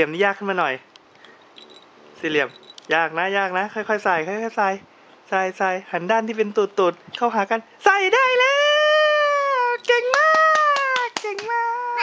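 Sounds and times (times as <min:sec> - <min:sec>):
high-pitched voice cheering: 0:08.4 - 0:12.0
hands clapping quickly: 0:09.8 - 0:11.7.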